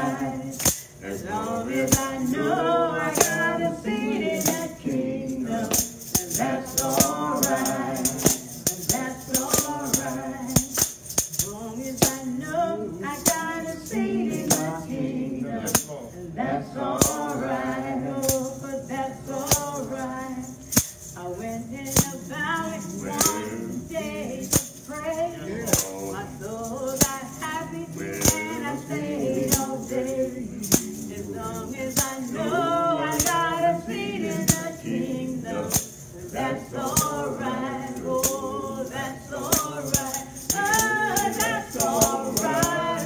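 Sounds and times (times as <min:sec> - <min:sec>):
tambourine beat: 0:00.0 - 0:15.0, 0:15.6 - 0:16.1, 0:16.9 - 0:43.0
gospel singing: 0:00.0 - 0:43.0.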